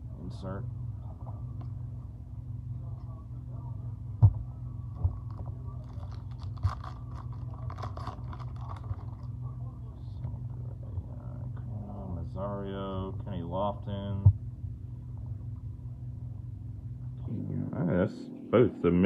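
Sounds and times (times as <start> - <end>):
low hum: 0.0 - 19.0
card pack wrapper crinkling: 5.3 - 9.3.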